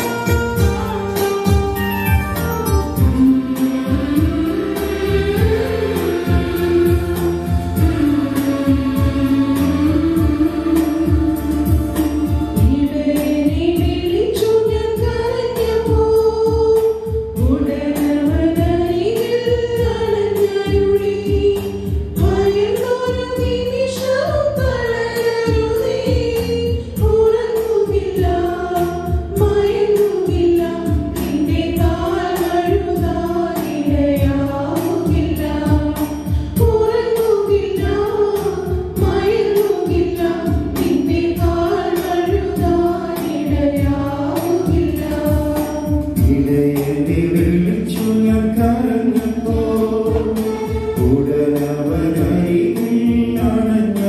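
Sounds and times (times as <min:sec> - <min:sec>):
steady rhythmic beat: 0:00.0 - 0:14.2, 0:30.9 - 0:54.0
choir singing a hymn: 0:03.1 - 0:13.8, 0:28.0 - 0:45.6, 0:49.0 - 0:51.6.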